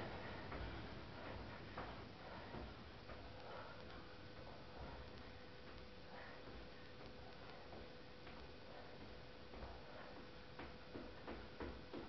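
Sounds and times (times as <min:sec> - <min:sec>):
trainers tapping on floor: 0:10.6 - 0:12.0.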